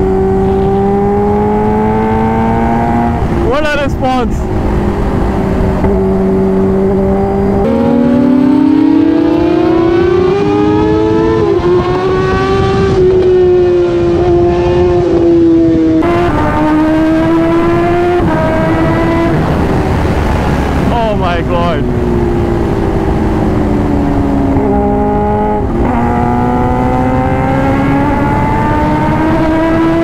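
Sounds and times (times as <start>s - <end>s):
motorcycle engine at high revs: 0.0s - 30.0s.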